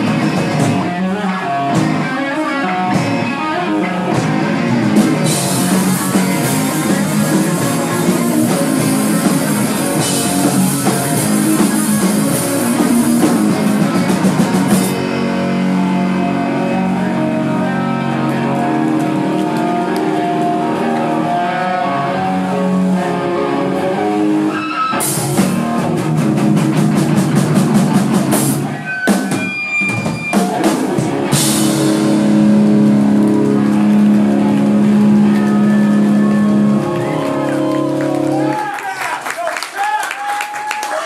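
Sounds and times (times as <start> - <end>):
hardcore band playing live: 0.0 - 39.4.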